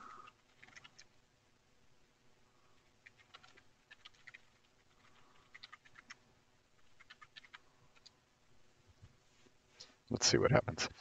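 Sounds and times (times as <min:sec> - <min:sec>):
faint keyboard typing: 0:00.0 - 0:01.2, 0:02.6 - 0:08.2.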